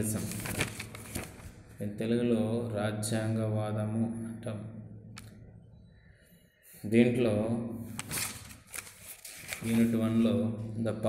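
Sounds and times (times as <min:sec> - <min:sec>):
man's voice: 0:00.0 - 0:00.5, 0:09.6 - 0:11.0.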